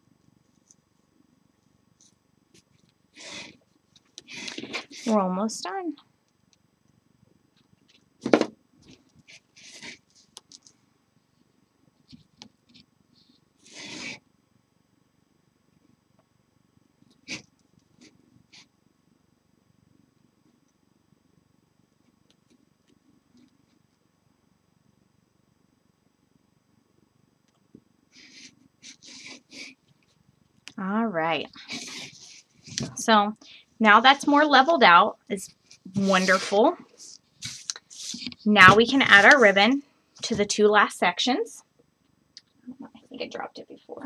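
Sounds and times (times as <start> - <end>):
fabric rustling: 35.6 - 40.5.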